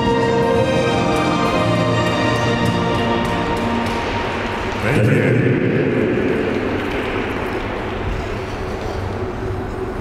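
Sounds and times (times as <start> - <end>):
ice rink arena background noise: 0.0 - 10.0.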